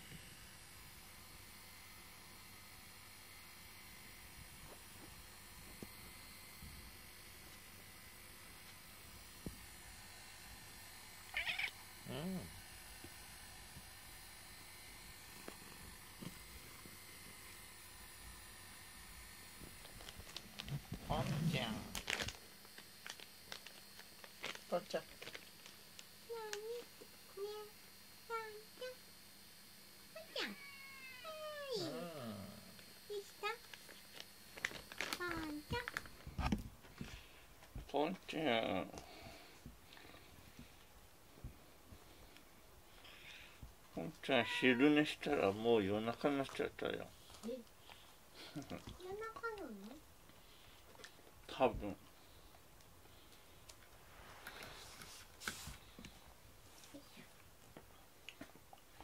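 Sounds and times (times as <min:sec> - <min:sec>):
cat chirp: 0:11.3 - 0:11.8, 0:30.4 - 0:31.5, 0:44.4 - 0:44.9
cat meowing: 0:11.3 - 0:11.8, 0:30.4 - 0:31.9, 0:44.2 - 0:45.0.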